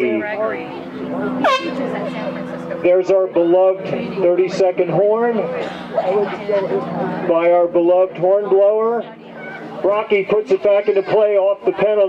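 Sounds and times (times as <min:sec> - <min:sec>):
long steady horn blast: 0:01.3 - 0:02.6.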